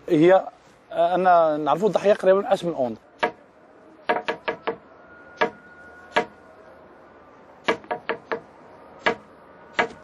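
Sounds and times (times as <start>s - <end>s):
sharp knocks on concrete: 3.2s - 3.4s, 4.0s - 4.8s, 7.6s - 10.0s.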